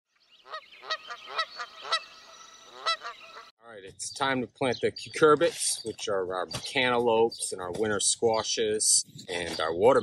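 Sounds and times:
bird calling: 0.3 - 7.6.

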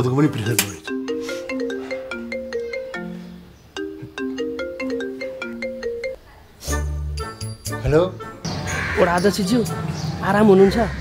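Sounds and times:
mobile phone melodic ringtone: 0.1 - 6.2.

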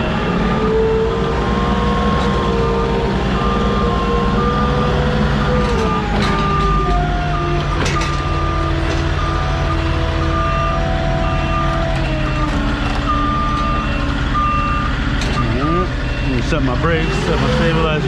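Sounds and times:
diesel engine running: 0.0 - 18.0
reversing alarm beeping: 0.0 - 18.0.

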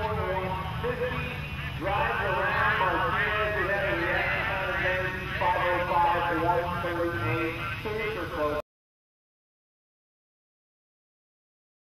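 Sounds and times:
low background rumble: 0.0 - 8.6
man talking over public address: 0.0 - 8.6.

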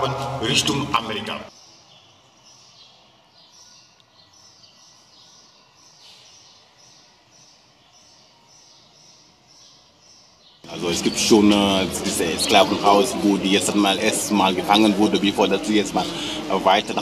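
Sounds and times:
faint bird chirping: 1.2 - 17.0.

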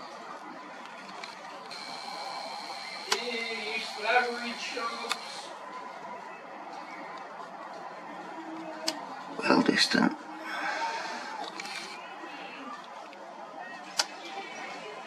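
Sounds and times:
faint background voices: 0.0 - 15.0
camera zoom motor whirring: 1.6 - 5.5, 11.4 - 12.0.

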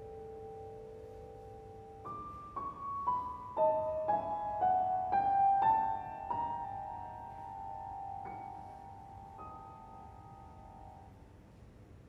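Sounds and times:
piano notes ringing: 0.0 - 11.5.

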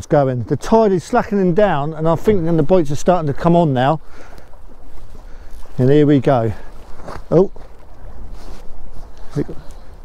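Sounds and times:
wind and water rumble: 0.0 - 10.0.

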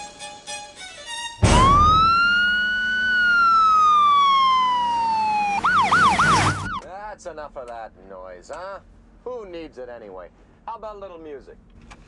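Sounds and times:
ambulance siren wailing and yelping: 1.4 - 6.8.

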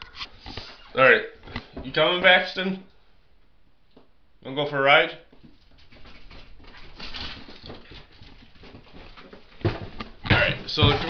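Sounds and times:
dog claws scuffling on hard floor: 5.4 - 11.0.

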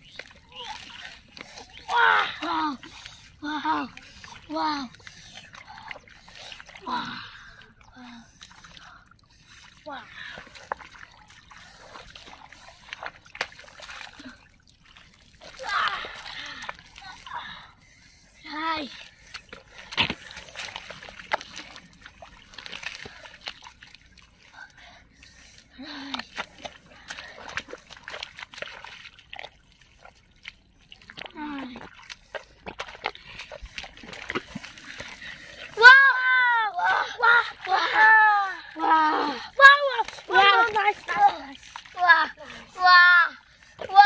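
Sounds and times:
hands squelching in wet mud: 0.0 - 42.8
hands splashing in muddy water: 19.3 - 24.2, 26.0 - 35.8
child exclaiming: 35.8 - 44.0.

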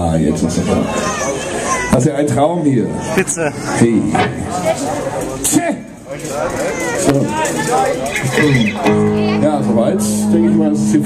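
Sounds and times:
men talking: 0.0 - 11.0
electric guitar chord ringing: 8.8 - 11.0.

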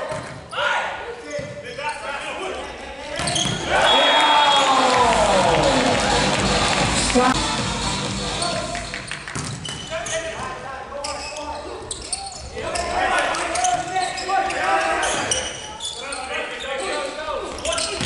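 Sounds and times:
sneakers squeaking on court floor: 3.2 - 3.7, 8.3 - 18.0
volleyball hits: 8.6 - 9.8.

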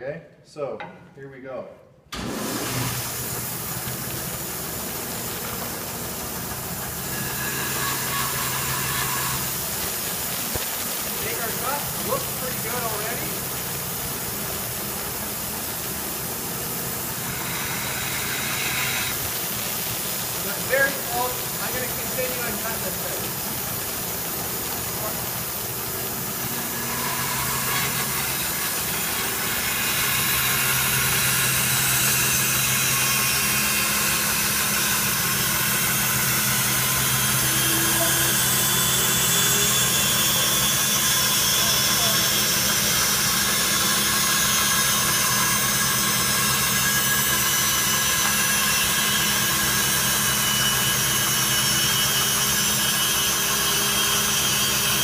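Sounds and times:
machine hum: 2.1 - 55.0
band saw cutting wood: 2.2 - 55.0.

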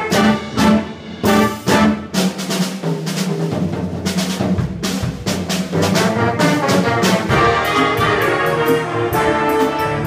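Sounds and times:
jazz big band playing: 0.0 - 10.0.

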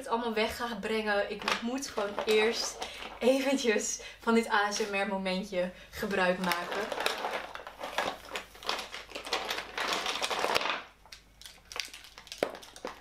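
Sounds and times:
makeup products clattering and rustling: 1.3 - 3.5, 6.4 - 10.9.

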